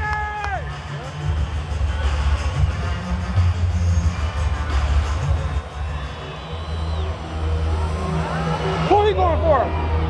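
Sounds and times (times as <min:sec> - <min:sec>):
steady low stadium rumble: 0:00.0 - 0:10.0.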